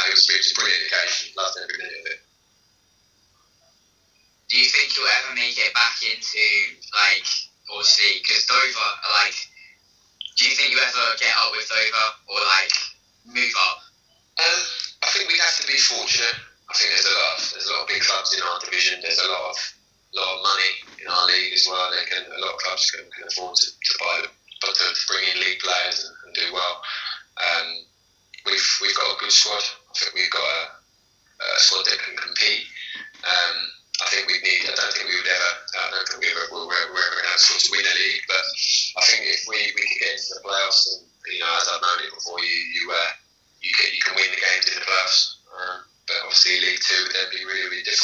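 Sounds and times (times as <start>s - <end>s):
man talking: 0.0s - 2.2s, 4.5s - 13.8s, 14.4s - 27.8s, 28.4s - 30.8s, 31.4s - 48.0s.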